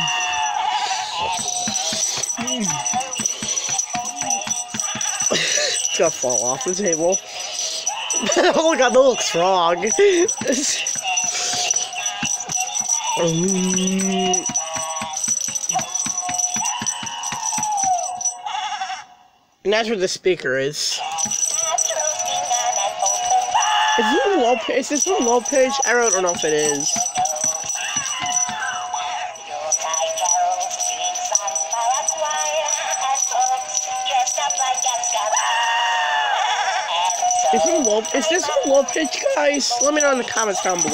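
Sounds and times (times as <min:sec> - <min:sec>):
fast rattling beat: 0:00.0 - 0:18.4, 0:21.0 - 0:35.7, 0:37.0 - 0:40.9
toy playing melody: 0:00.0 - 0:18.8, 0:21.0 - 0:40.9.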